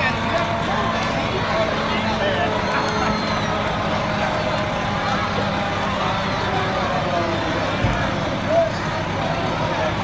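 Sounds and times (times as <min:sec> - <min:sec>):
fire engine idling: 0:00.0 - 0:10.0.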